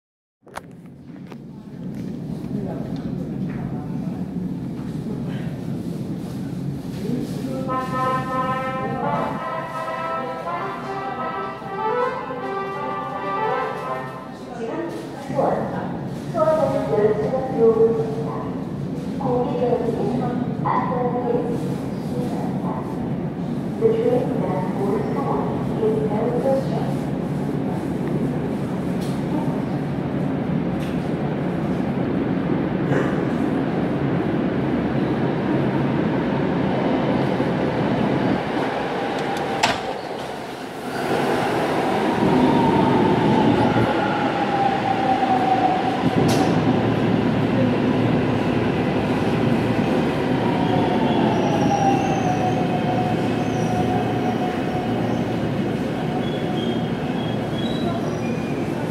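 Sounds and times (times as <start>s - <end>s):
train wheels rumbling on rail: 0.8s - 58.9s.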